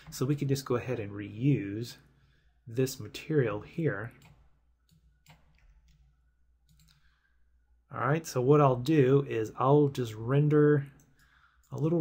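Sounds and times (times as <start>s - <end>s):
faint mouse clicks: 4.2s - 7.1s.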